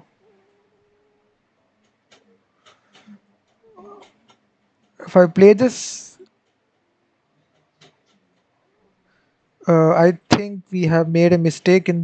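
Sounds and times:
computer mouse clicks: 1.8s - 5.0s.

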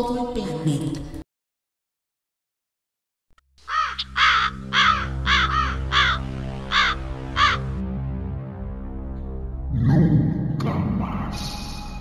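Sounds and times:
crow cawing: 3.6s - 7.8s.

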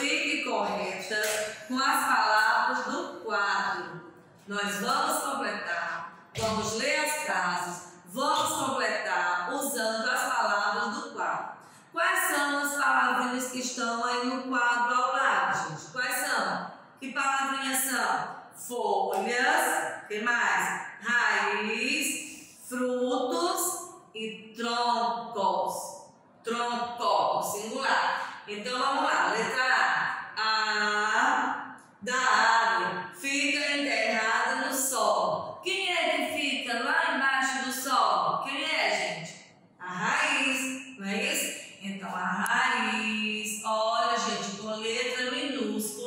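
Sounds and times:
woman speaking: 0.0s - 46.0s.

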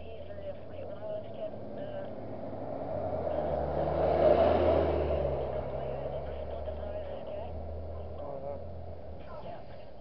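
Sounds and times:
vehicle passing by: 0.0s - 10.0s.

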